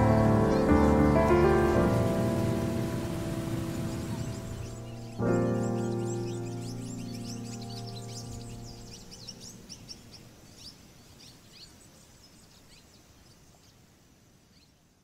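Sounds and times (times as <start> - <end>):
soundtrack music chord: 0.0 - 9.1
birds chirping: 0.0 - 15.0.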